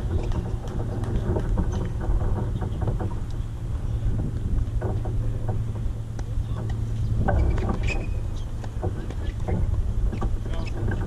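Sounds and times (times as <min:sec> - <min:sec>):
wind buffeting microphone: 0:00.0 - 0:11.0
short high squeak: 0:07.4 - 0:08.5.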